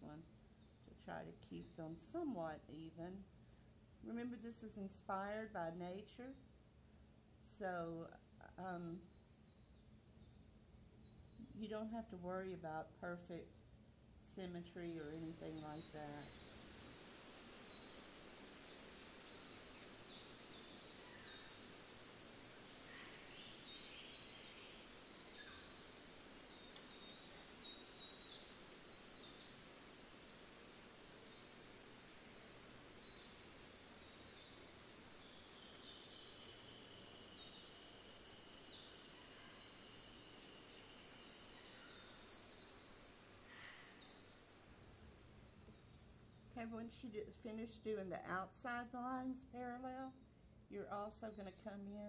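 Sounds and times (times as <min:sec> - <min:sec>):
low steady background hiss: 0:00.0 - 0:52.0
small birds chirping: 0:00.0 - 0:52.0.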